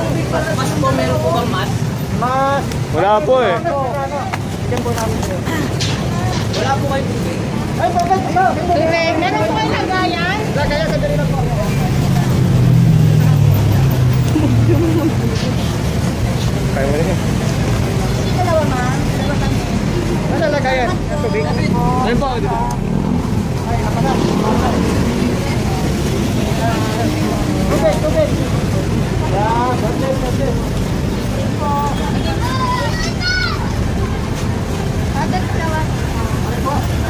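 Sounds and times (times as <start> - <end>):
people talking: 0.0 - 37.0
street traffic rumble: 0.0 - 37.0.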